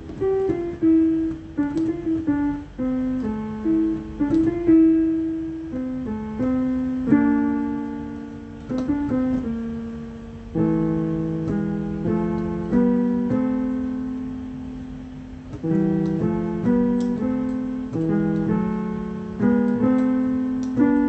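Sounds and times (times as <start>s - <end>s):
faint clicks on note attacks: 0.1s - 2.4s, 8.6s - 9.6s, 15.5s - 18.6s, 19.4s - 21.0s.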